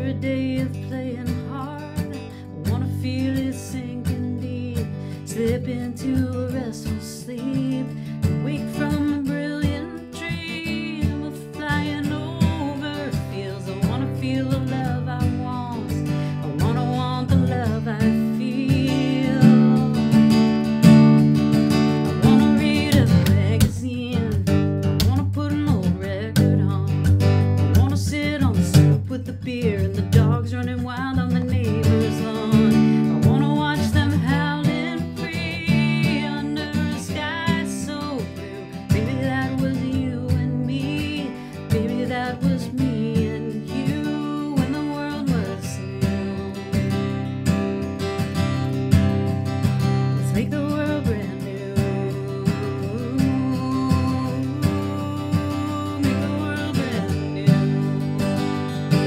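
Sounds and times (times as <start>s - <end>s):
person singing: 0.0s - 20.7s, 21.8s - 47.7s, 50.0s - 59.0s
acoustic guitar strumming: 0.0s - 59.0s.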